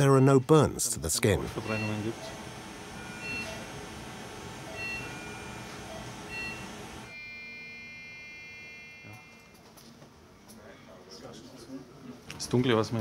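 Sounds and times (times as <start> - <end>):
room noise: 0.9 - 13.0
short electronic beeps: 1.6 - 2.1.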